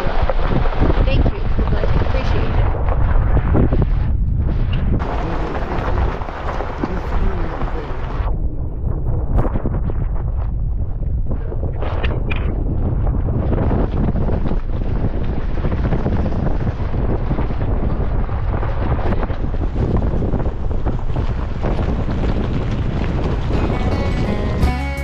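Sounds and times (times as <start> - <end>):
wind buffeting microphone: 0.0 - 24.6
tyres rumbling on gravel: 5.0 - 8.3, 12.6 - 25.0.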